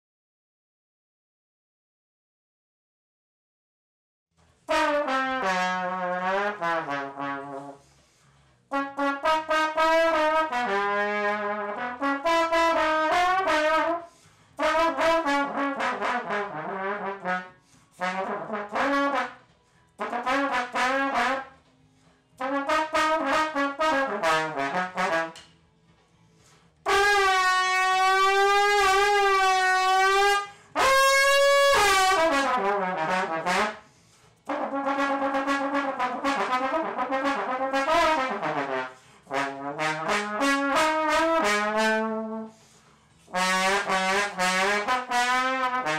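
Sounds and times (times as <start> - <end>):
slide trombone playing: 4.6 - 8.0, 8.7 - 21.7, 22.4 - 25.5, 26.8 - 45.9.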